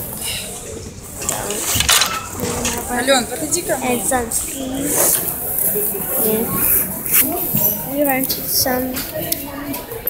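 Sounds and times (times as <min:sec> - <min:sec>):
person speaking: 0:02.8 - 0:09.5.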